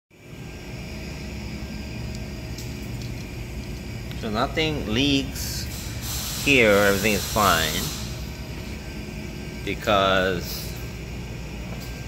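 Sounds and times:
factory machinery hum: 0.1 - 12.0.

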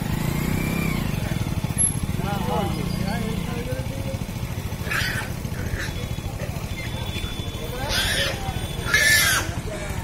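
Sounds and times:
pig squealing: 4.7 - 6.2, 7.7 - 9.7.

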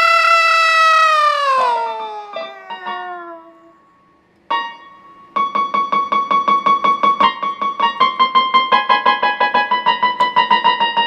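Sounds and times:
piano note: 1.6 - 11.0.

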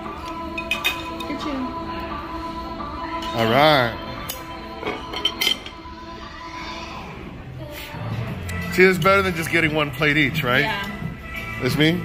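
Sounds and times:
background music: 0.0 - 12.0
metal spoons clinking on ceramic: 4.3 - 5.7.

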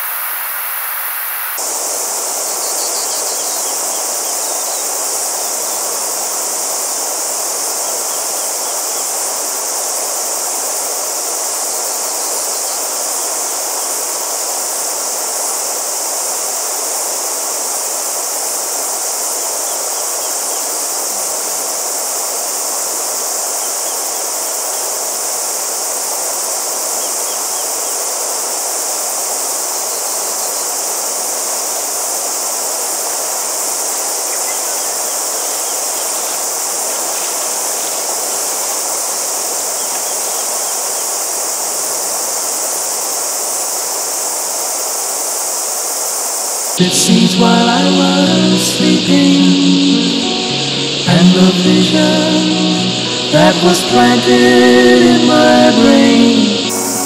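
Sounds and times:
cicadas chorus: 0.0 - 57.0
river flowing: 0.0 - 57.0.

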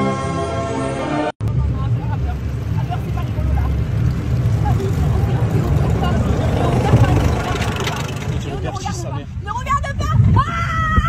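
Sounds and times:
low rumble: 1.4 - 11.0
faint voices: 1.6 - 10.0.

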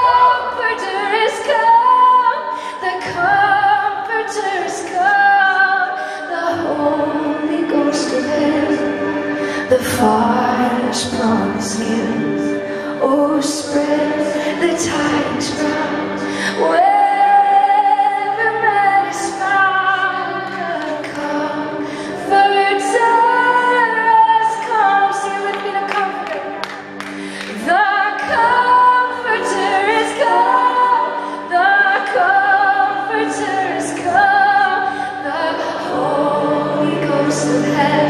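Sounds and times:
woman singing a hymn: 0.0 - 26.7, 27.4 - 38.0.

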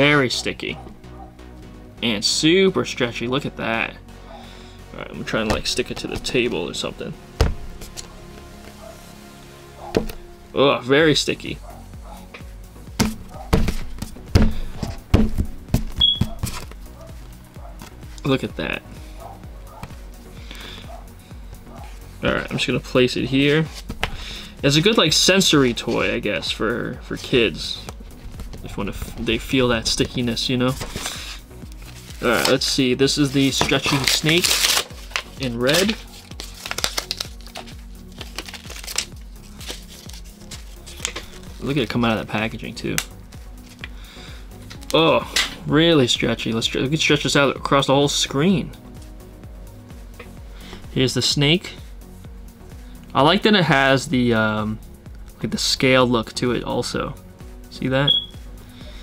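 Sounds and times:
background music: 0.0 - 59.0
rubber toy thudding on table: 13.0 - 16.4
plastic packaging crinkling: 33.2 - 41.5.

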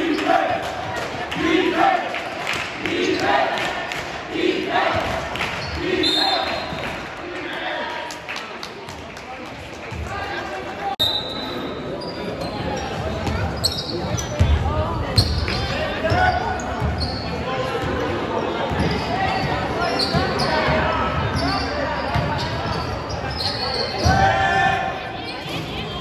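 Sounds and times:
voices in a hall: 0.0 - 26.0
sneaker squeaks: 5.6 - 6.9, 11.0 - 24.3, 25.1 - 26.0.

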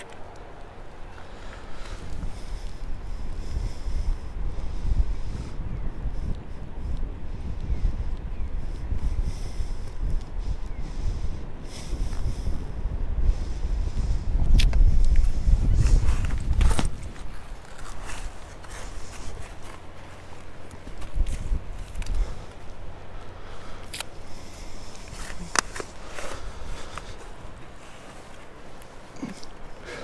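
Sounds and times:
footsteps on wet sand: 14.7 - 23.1.

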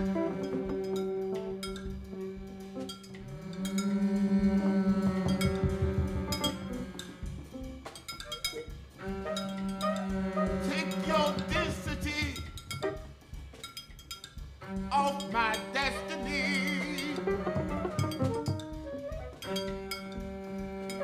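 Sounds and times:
bowed double bass: 0.0 - 7.8, 9.0 - 12.9, 14.6 - 21.0
alto saxophone: 0.0 - 13.4, 14.6 - 21.0
scattered percussion: 0.0 - 21.0.

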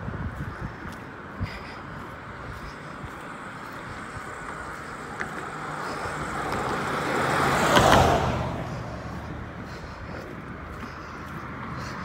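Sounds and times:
vehicle passing close by: 2.0 - 12.0.

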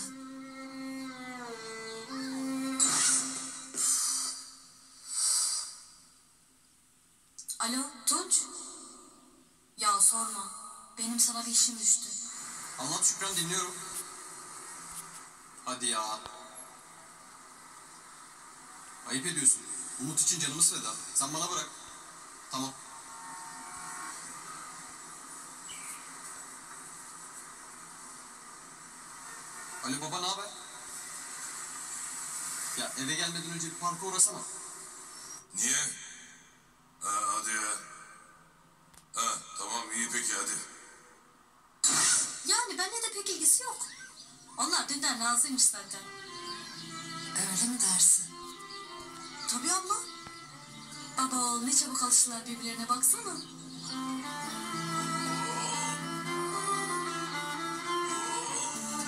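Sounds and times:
drama score through tv speaker: 0.0 - 59.0
short hissing swells: 2.2 - 6.1.

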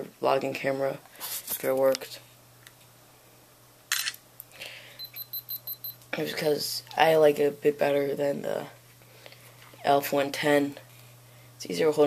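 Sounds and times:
camera click: 3.9 - 4.2
short high electronic beeps: 5.0 - 6.0.

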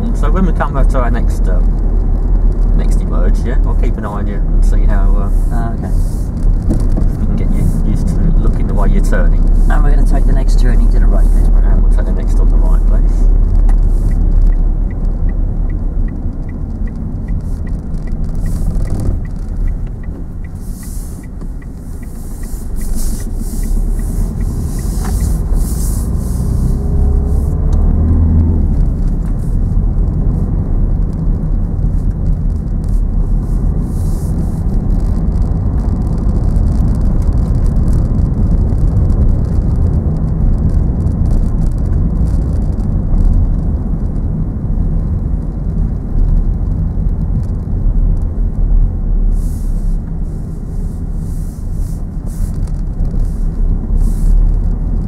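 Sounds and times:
car engine accelerating: 0.0 - 55.0
car engine and tyre rumble: 0.0 - 55.0.

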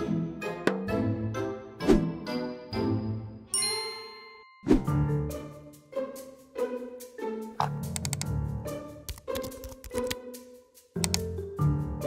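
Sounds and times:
plucked background music: 0.0 - 12.0
bright bell-like ding: 3.5 - 4.7.

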